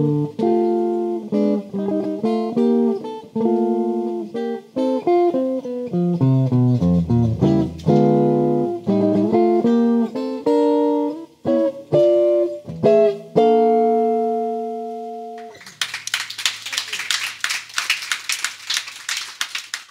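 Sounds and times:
solo jazz guitar: 0:00.0 - 0:15.6
audience applause: 0:15.4 - 0:19.9.

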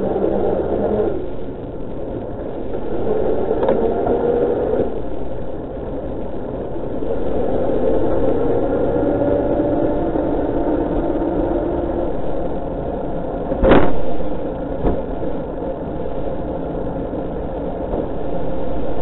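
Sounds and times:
car engine: 0:00.0 - 0:19.0
droning hum with drifting tones: 0:00.0 - 0:19.0.

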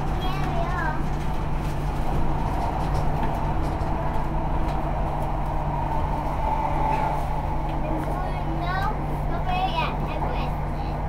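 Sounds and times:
constant train hum: 0:00.0 - 0:11.0
train wheels rumbling on rails: 0:00.0 - 0:11.0.

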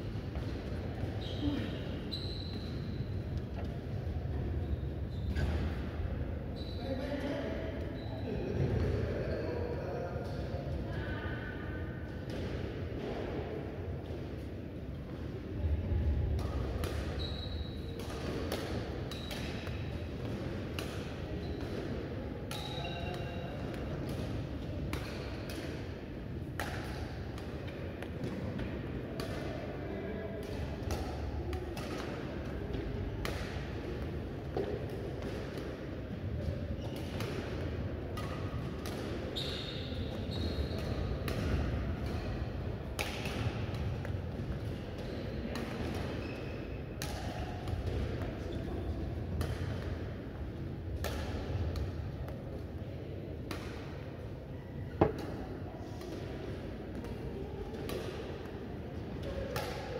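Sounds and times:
rackets striking shuttlecock: 0:22.5 - 0:29.6, 0:30.4 - 0:35.8, 0:36.9 - 0:39.3, 0:40.3 - 0:46.2, 0:55.0 - 0:56.3, 0:59.2 - 0:59.9.

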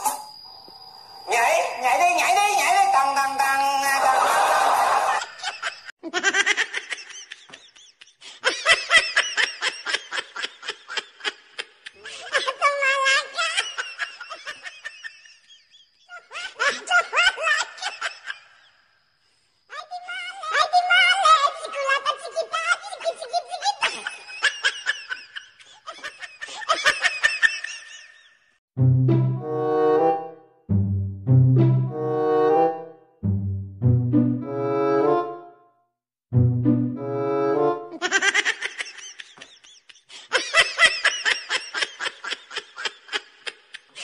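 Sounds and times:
high-pitched breathy laughter: 0:07.9 - 0:14.8, 0:21.5 - 0:27.8.

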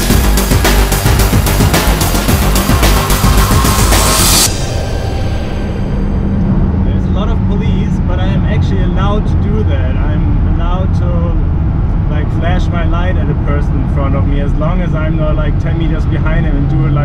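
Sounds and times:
music: 0:00.0 - 0:09.9
car engine drone: 0:00.0 - 0:17.0
man talking: 0:06.9 - 0:11.4, 0:12.1 - 0:17.0.

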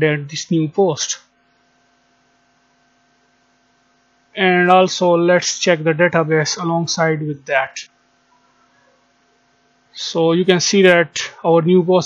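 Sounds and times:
person speaking: 0:00.0 - 0:01.3, 0:04.4 - 0:07.9, 0:10.0 - 0:12.0
electrical hum with hiss: 0:00.0 - 0:12.0.

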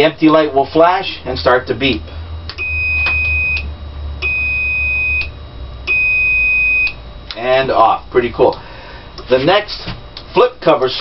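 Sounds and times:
low steady hum: 0:00.0 - 0:11.0
high electronic beeps: 0:02.6 - 0:05.3.

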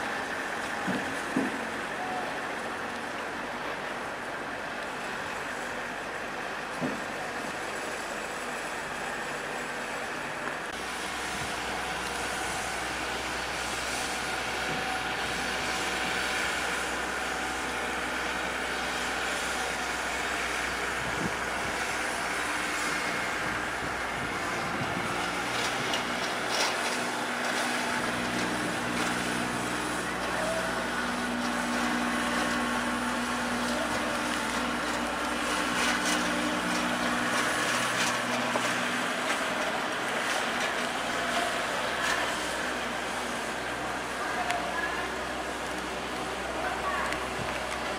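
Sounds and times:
tractor engine running: 0:00.0 - 0:47.9.

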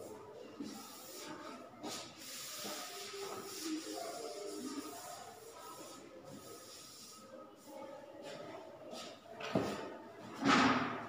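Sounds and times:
duster rubbing blackboard: 0:00.6 - 0:07.3.

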